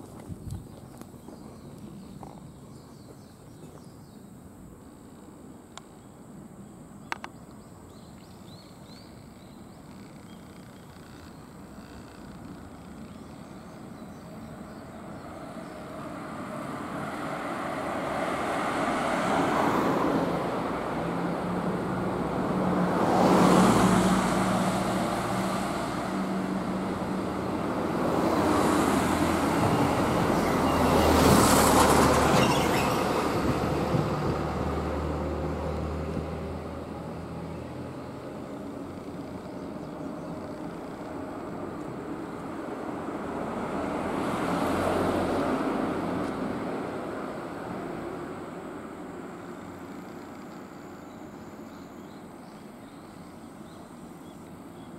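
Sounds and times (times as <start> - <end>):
vehicles passing on a street: 0.0 - 54.9.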